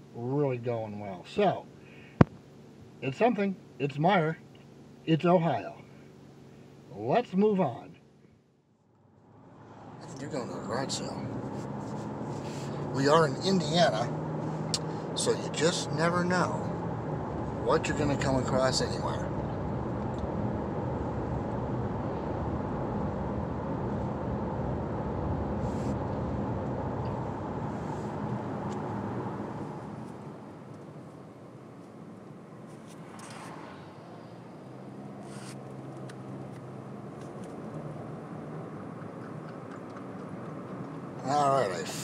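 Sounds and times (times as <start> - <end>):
car road and engine noise: 0.0 - 42.0.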